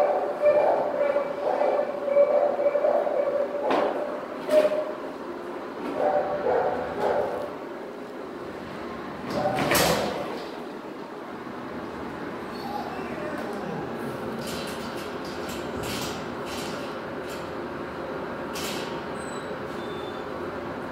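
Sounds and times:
dogs barking: 0.0s - 5.0s, 5.9s - 7.6s.

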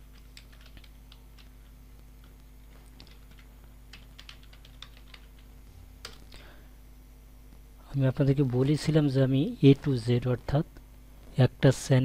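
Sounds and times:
keyboard typing: 0.0s - 1.5s, 2.2s - 6.4s
low hum: 5.4s - 8.6s.

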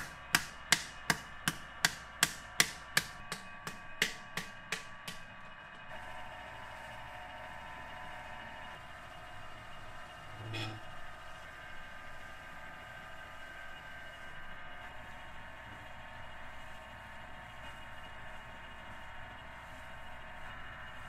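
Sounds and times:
wooden paddle beating clay jar: 0.0s - 5.2s
steady hum: 0.0s - 21.0s.

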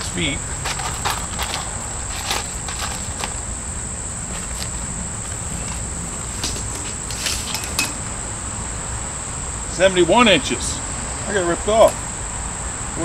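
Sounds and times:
insects trilling: 0.0s - 13.0s
low outdoor rumble: 0.0s - 13.0s.

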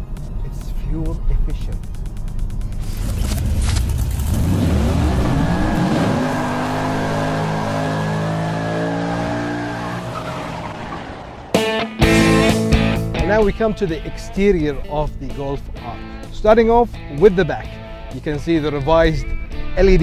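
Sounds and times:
car engine revving: 0.0s - 18.7s
tyre screech: 2.8s - 11.5s.

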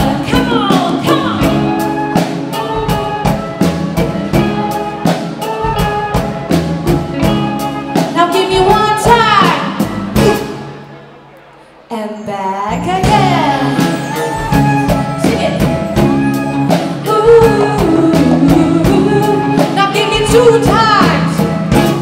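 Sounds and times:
drums beating: 0.0s - 10.8s, 12.8s - 22.0s
live band playing: 0.0s - 22.0s
person singing: 12.3s - 15.4s, 16.7s - 20.6s.

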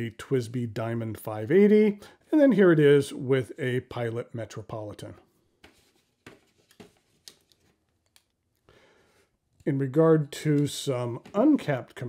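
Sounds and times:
faint clicks and rustles of pens: 5.6s - 9.7s.

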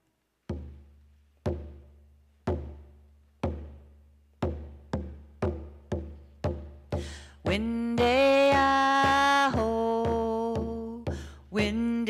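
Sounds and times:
frame hand drum booms: 0.5s - 12.0s.

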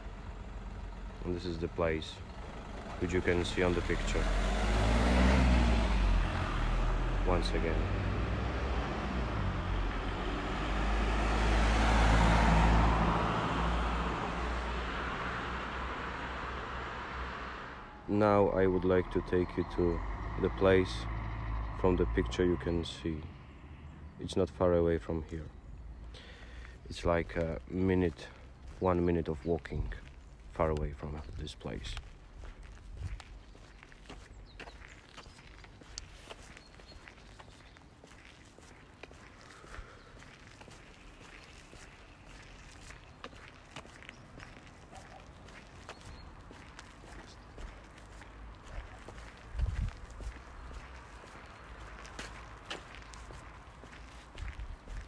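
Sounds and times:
car driving past: 2.0s - 24.2s
footsteps on paving stones: 26.0s - 55.0s.

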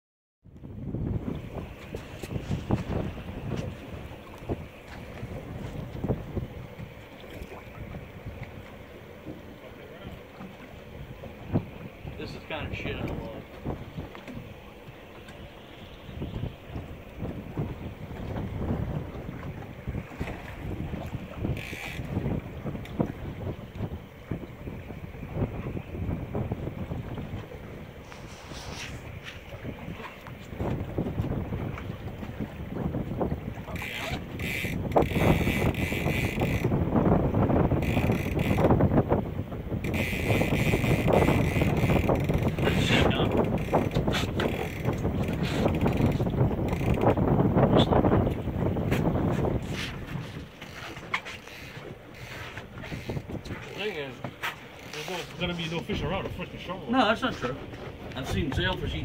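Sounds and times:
wind buffeting microphone: 0.4s - 59.0s
sea water washing around boat: 0.5s - 59.0s.

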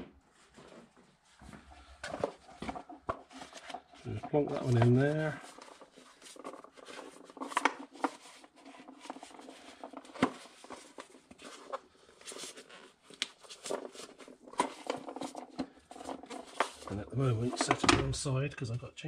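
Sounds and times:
paper filter rustling: 0.4s - 18.2s.

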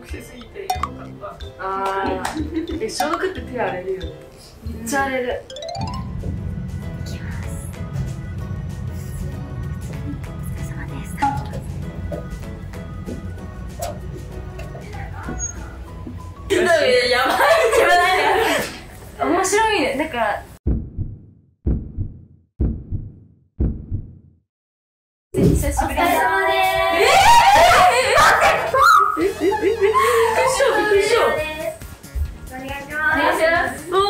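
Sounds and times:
background music: 0.0s - 19.8s, 25.8s - 34.0s
girls squealing and shrieking: 26.7s - 31.4s.

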